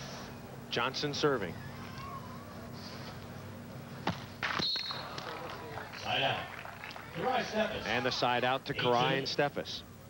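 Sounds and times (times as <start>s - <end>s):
referee's whistle blast: 4.5s - 5.2s.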